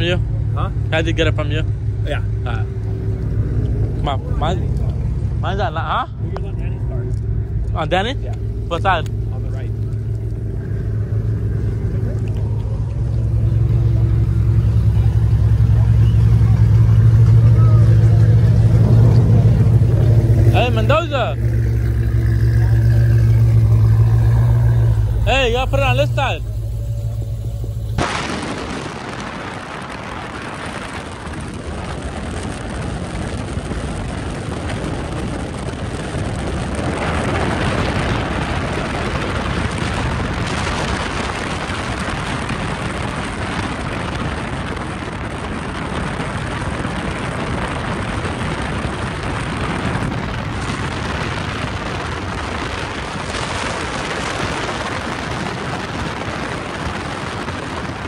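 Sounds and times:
wind and vehicle noise rushing: 0.0s - 58.0s.

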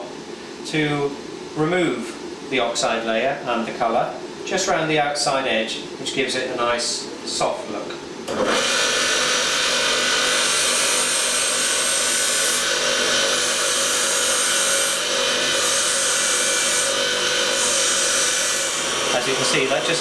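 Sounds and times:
polishing motor humming: 8.3s - 20.0s
high hiss of polishing: 13.4s - 20.0s.

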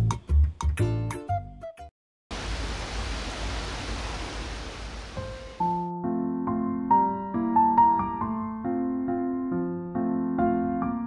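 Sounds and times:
steady rushing noise: 2.4s - 5.8s.

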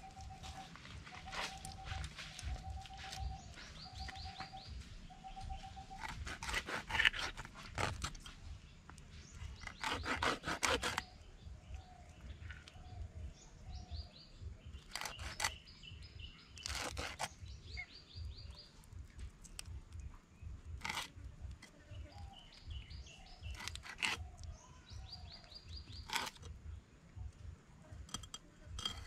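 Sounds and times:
bird chirps: 0.0s - 6.6s, 8.2s - 27.4s
knife scraping fish: 6.0s - 8.4s, 9.6s - 11.1s, 14.8s - 15.6s, 16.6s - 17.4s, 20.8s - 21.7s, 23.5s - 24.2s, 26.0s - 26.5s, 28.0s - 29.0s.

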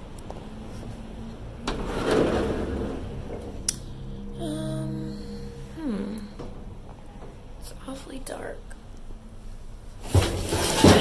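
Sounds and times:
dumpster lid scraping open: 1.7s - 3.6s, 10.0s - 11.0s.

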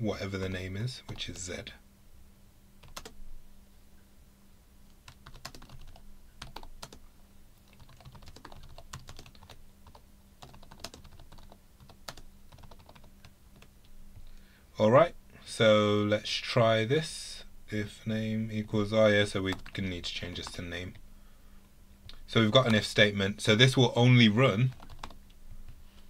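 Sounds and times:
typing on computer keyboard: 2.8s - 3.2s, 5.1s - 7.0s, 7.7s - 13.7s, 19.5s - 19.8s, 24.7s - 25.2s.

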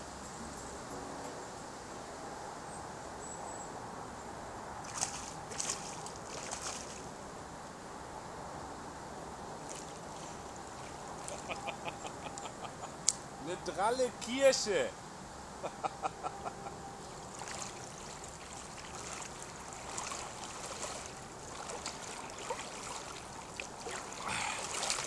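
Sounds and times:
outdoor background noise: 0.0s - 25.0s
short water splashes: 4.8s - 7.1s, 9.6s - 12.0s, 17.1s - 25.0s
light ticks: 12.3s - 13.3s
person speaking: 13.4s - 15.0s, 24.2s - 24.8s.

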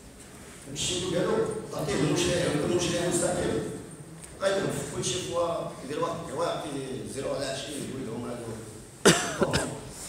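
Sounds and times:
speech: 0.7s - 3.8s, 4.4s - 8.8s
person coughing: 9.0s - 10.0s.

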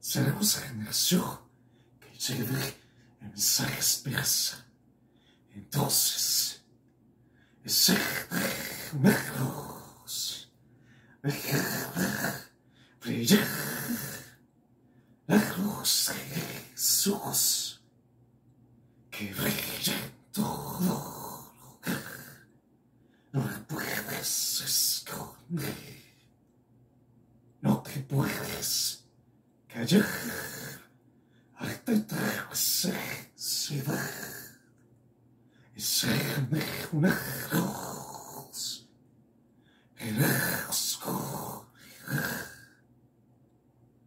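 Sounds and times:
man growling: 7.7s - 10.4s, 11.2s - 14.4s, 19.2s - 22.4s, 29.8s - 30.9s, 40.0s - 42.8s.

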